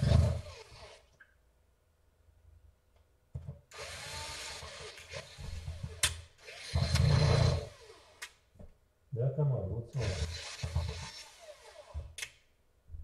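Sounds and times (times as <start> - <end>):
cordless drill driving a screw: 0.0 - 1.1, 3.7 - 8.4, 10.0 - 12.3
person talking: 9.1 - 10.2
sharp clicks: 12.2 - 12.4.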